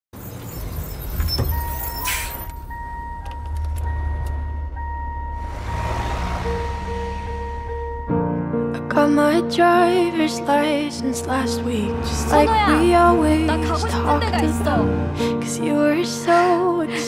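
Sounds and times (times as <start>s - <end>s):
car engine rumble: 0.2s - 17.0s
dashboard warning tone: 1.1s - 8.4s
rush of passing car: 3.9s - 8.3s, 9.9s - 16.6s
music: 6.4s - 17.0s.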